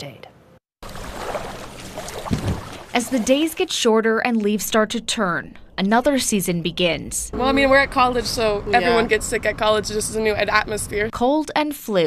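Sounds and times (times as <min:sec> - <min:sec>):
water noise: 0:00.8 - 0:11.2.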